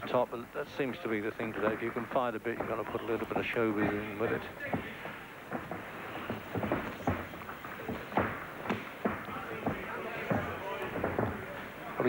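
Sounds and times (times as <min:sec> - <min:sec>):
crowd noise with voices: 0:00.0 - 0:12.0
gloves landing: 0:01.6 - 0:11.8
feet thudding on ring canvas: 0:03.8 - 0:11.6.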